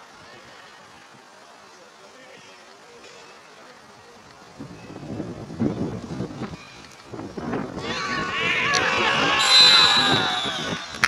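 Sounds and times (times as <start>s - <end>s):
men shouting and cheering: 7.7s - 11.0s
long shrill high note: 9.3s - 10.9s.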